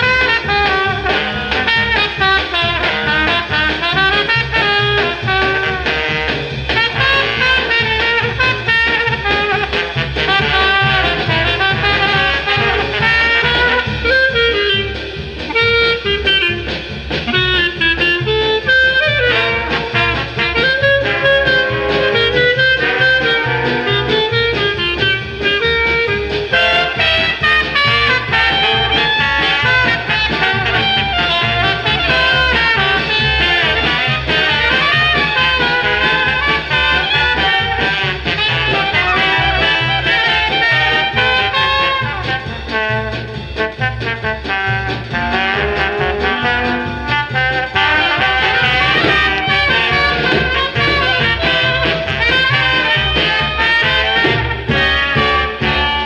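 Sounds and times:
dixieland jazz band playing: 0:00.0 - 0:56.0.

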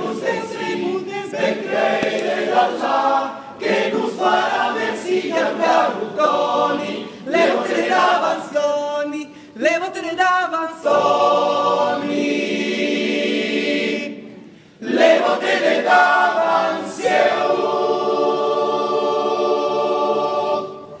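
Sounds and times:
a cappella choir singing: 0:00.0 - 0:09.4, 0:10.0 - 0:21.0.

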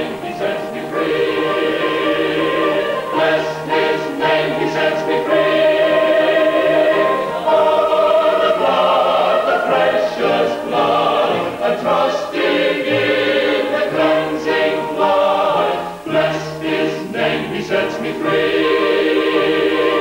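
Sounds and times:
choir singing: 0:00.0 - 0:20.0.

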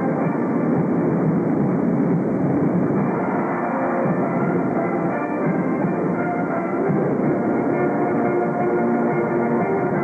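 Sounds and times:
muffled marching band music: 0:00.0 - 0:10.0.

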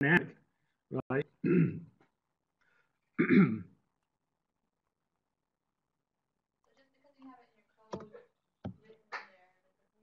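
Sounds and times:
man clearing throat: 0:01.4 - 0:02.0, 0:03.2 - 0:03.8.

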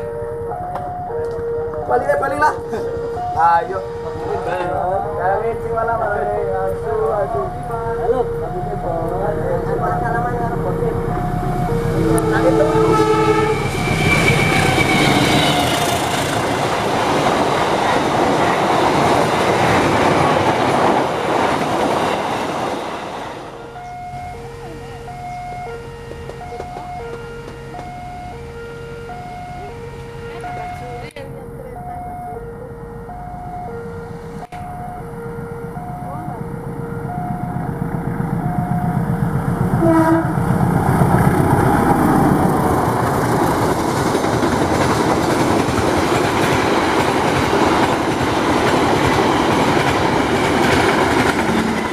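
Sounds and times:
train wheels rumbling on rails: 0:00.0 - 0:28.5, 0:36.1 - 0:51.9
train horn: 0:11.8 - 0:16.5, 0:39.7 - 0:40.5.

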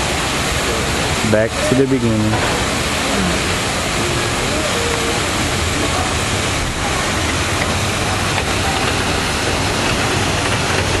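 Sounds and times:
waterfall pouring into pool: 0:00.0 - 0:11.0.

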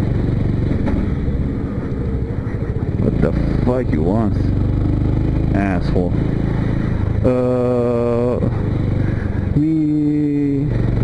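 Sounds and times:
motorcycle engine rumble: 0:00.0 - 0:11.0
road noise: 0:00.0 - 0:11.0.

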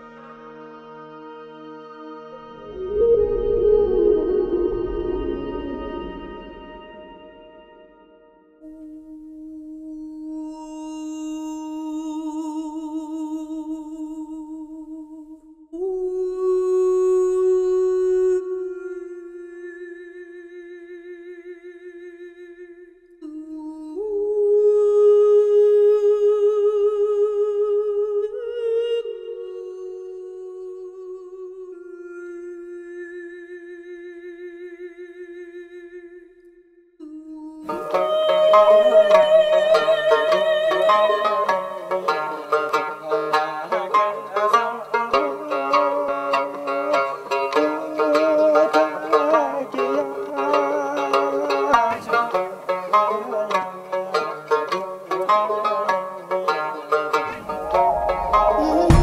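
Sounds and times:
person humming a slow melody: 0:02.6 - 0:07.5, 0:08.6 - 0:21.6, 0:23.2 - 0:34.2, 0:37.0 - 0:42.8, 0:57.5 - 0:59.0.

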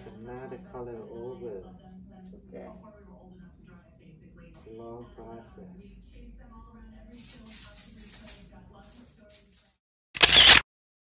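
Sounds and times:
camera shutter snap: 0:10.2 - 0:10.6.

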